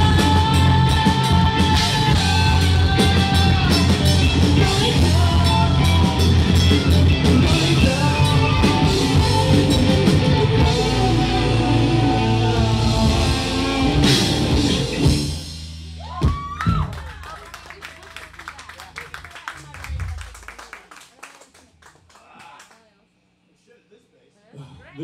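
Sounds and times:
person singing: 0.0s - 14.7s
electric guitars: 0.0s - 15.6s
bass guitar: 0.0s - 17.0s
drum kit: 0.0s - 17.0s.

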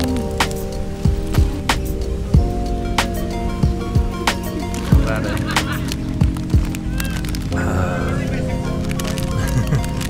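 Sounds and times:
sustained chords: 0.0s - 10.0s.

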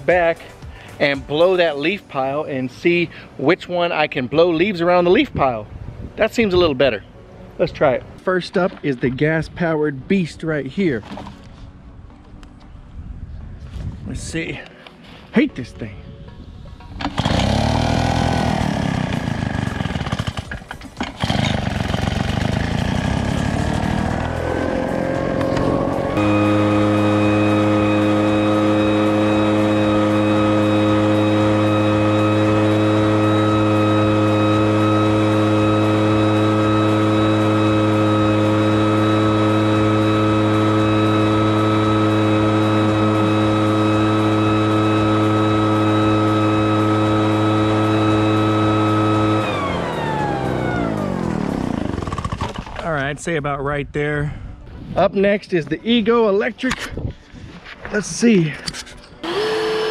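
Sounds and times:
leaf blower engine: 17.0s - 52.8s, 59.2s - 59.9s.

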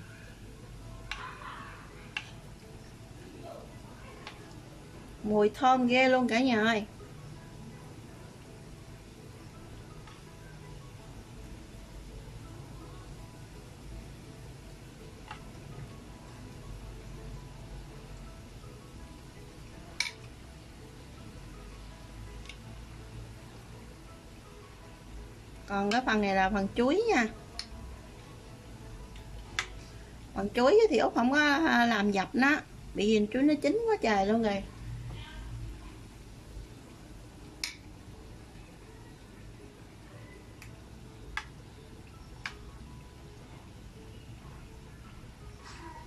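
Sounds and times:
soft background music: 0.0s - 46.0s.

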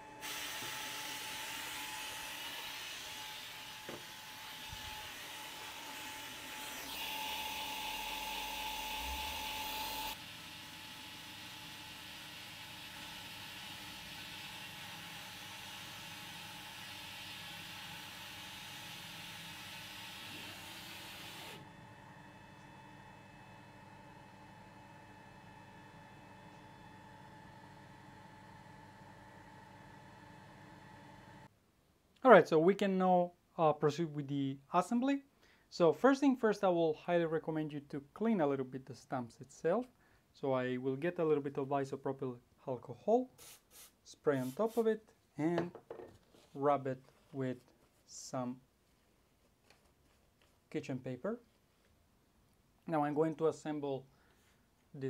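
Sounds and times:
laser engraver whirring hiss: 0.2s - 5.6s.

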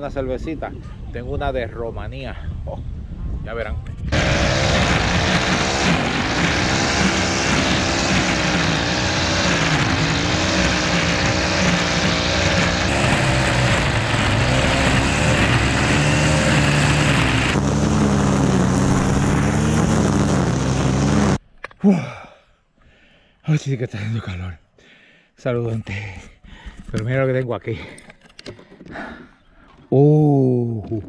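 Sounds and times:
string trimmer cutting grass: 4.1s - 21.4s.

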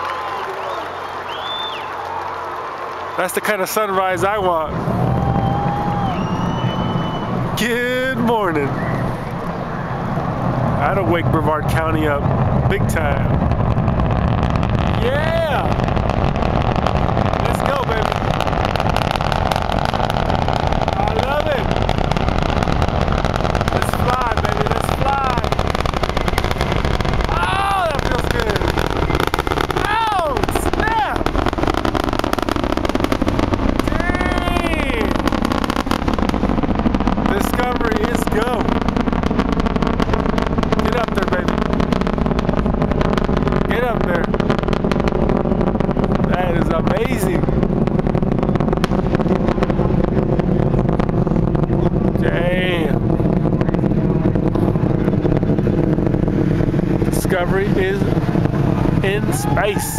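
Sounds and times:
people whooping: 0.0s - 10.1s, 14.9s - 15.8s, 20.4s - 21.7s, 27.2s - 31.3s, 33.8s - 35.2s, 59.1s - 59.9s
rocket engines roaring: 0.0s - 59.9s.

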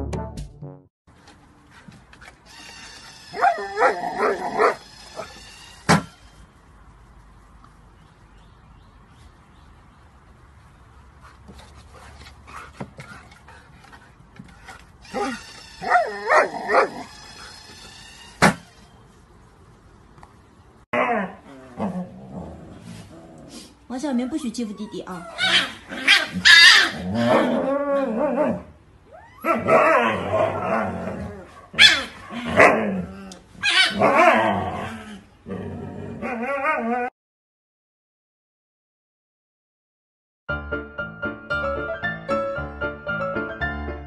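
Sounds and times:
dog barking: 3.4s - 4.8s, 15.8s - 17.0s, 25.4s - 27.5s, 31.7s - 32.7s.

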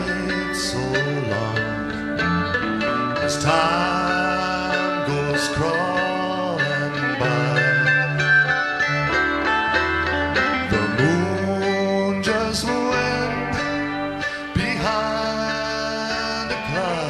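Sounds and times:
acoustic guitar: 0.0s - 17.0s
bass: 0.0s - 17.0s
gliding melody line: 0.0s - 17.0s
person singing: 0.0s - 17.0s.

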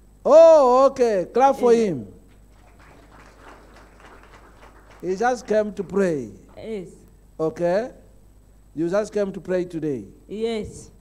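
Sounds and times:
congregation clapping: 2.3s - 6.3s.

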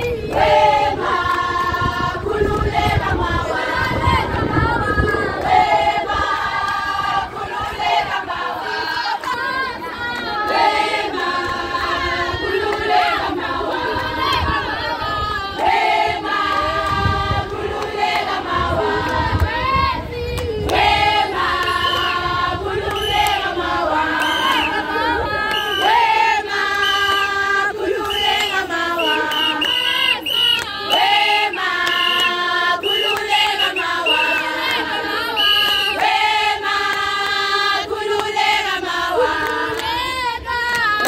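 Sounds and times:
group of women singing: 0.0s - 41.0s.

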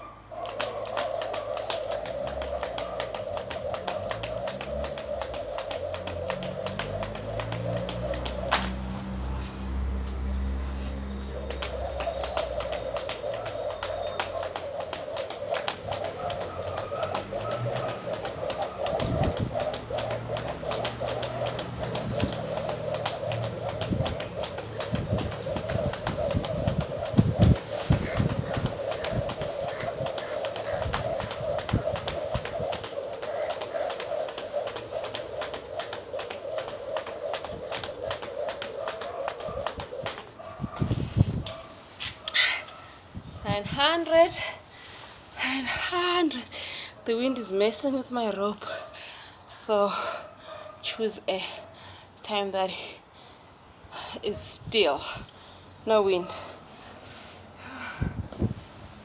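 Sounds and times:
jump rope whirring and ticking: 0.3s - 42.5s.

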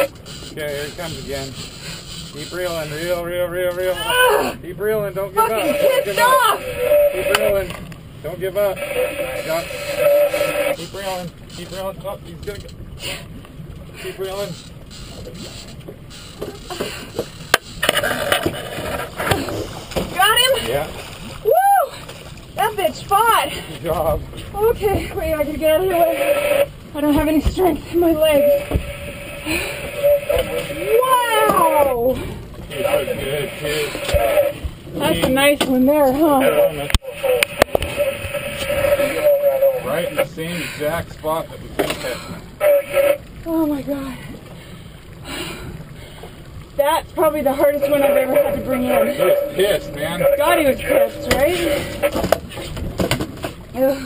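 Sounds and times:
outboard motor running: 0.0s - 54.0s
water noise around boat: 0.0s - 54.0s
wind: 0.0s - 54.0s
landing net knocking against boat: 52.0s - 53.6s.

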